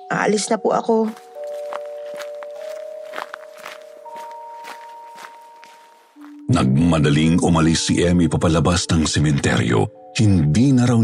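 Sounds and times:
footsteps walking away: 0:01.1 - 0:06.5
held music chord: 0:01.1 - 0:08.4.

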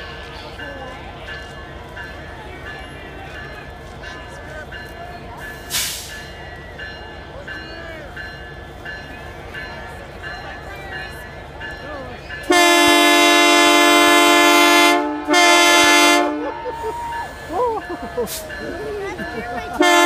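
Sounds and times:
crowd chatter: 0:00.0 - 0:20.0
locomotive air horn blast: 0:12.5 - 0:16.6, 0:19.8 - 0:20.0.

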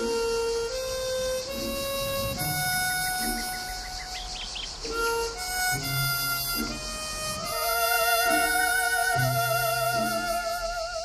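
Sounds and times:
harmonica melody: 0:00.0 - 0:11.0.

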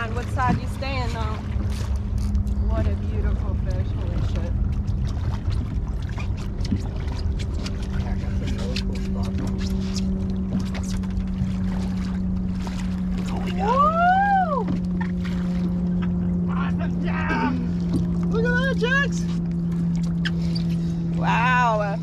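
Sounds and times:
fish thrashing and splashing water: 0:00.0 - 0:22.0
low rumble: 0:00.0 - 0:22.0
steady low hum: 0:00.0 - 0:22.0.

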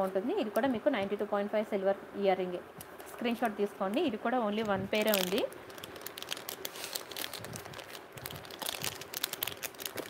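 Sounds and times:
plastic packaging crinkling: 0:04.5 - 0:10.0.

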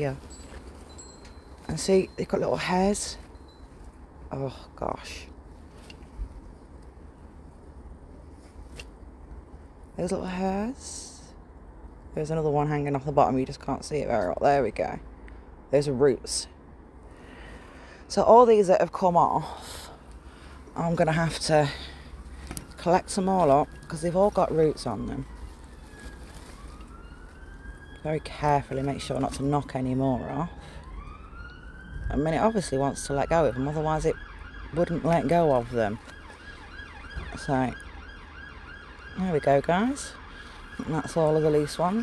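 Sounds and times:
faint siren wailing: 0:19.7 - 0:42.0.

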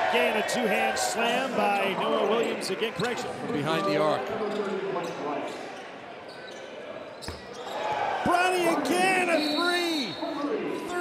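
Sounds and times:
crowd noise with shouts: 0:00.0 - 0:04.8, 0:07.0 - 0:11.0.

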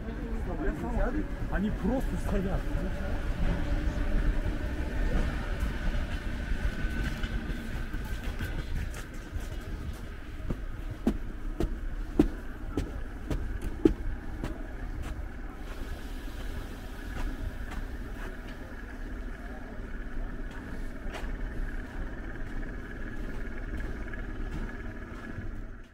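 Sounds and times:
low rumble: 0:00.0 - 0:25.9
steady high hum: 0:00.0 - 0:25.9.

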